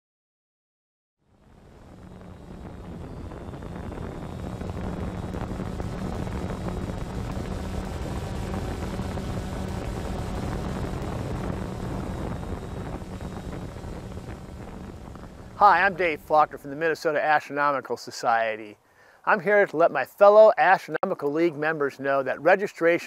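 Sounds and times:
drone propellers humming: 1.2s - 17.0s.

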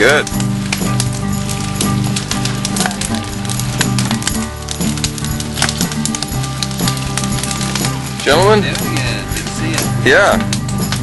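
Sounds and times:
music with sustained low chords: 0.0s - 11.0s.

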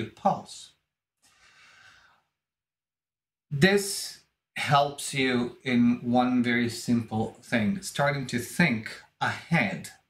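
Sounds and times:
man breathing: 1.2s - 2.4s.

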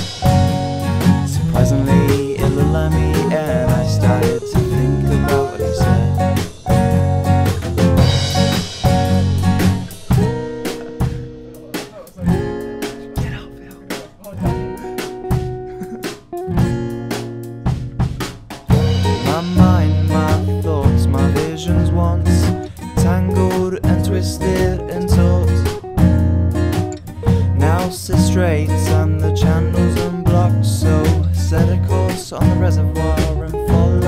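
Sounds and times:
drum kit: 0.0s - 34.0s
guitar: 0.0s - 34.0s.

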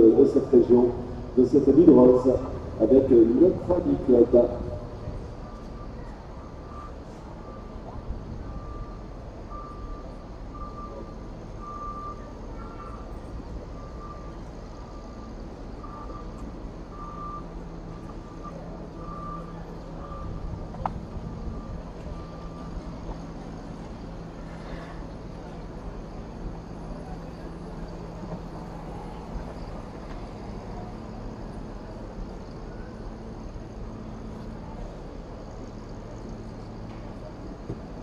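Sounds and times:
reversing alarm beeping: 0.0s - 37.5s.

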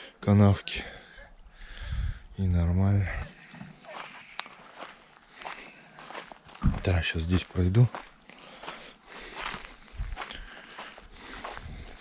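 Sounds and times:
footsteps on soil: 3.2s - 12.0s.

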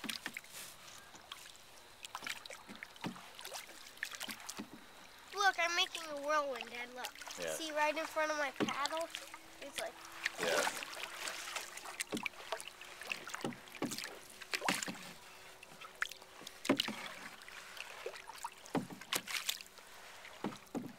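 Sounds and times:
paddle splashing in water: 0.0s - 20.9s.

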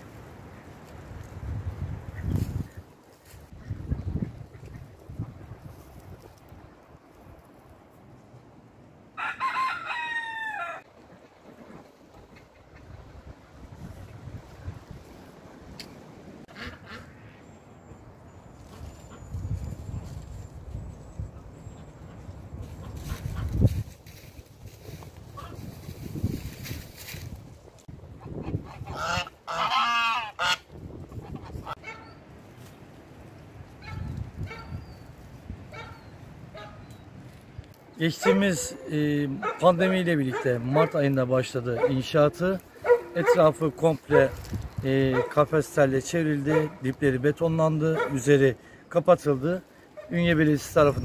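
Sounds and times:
rooster crowing: 9.2s - 10.9s
geese honking: 16.5s - 17.5s, 28.2s - 32.3s, 38.1s - 44.5s.

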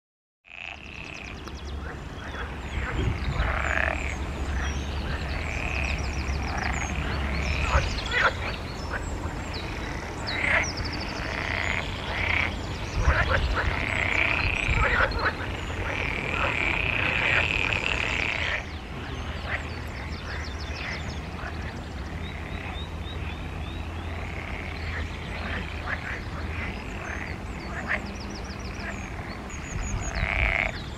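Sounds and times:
frogs croaking in chorus: 0.5s - 30.9s.

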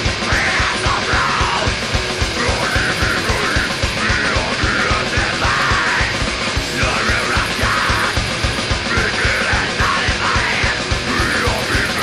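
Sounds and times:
extreme metal band playing live: 0.0s - 12.0s
shouted vocal: 0.3s - 1.8s, 2.4s - 12.0s.

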